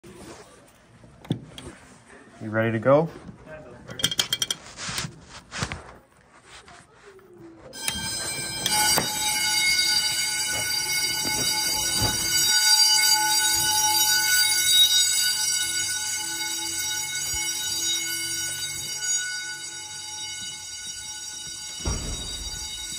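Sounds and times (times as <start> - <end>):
fire alarm high-pitched tone: 7.7 - 22.9
knocks: 21.8 - 22.9.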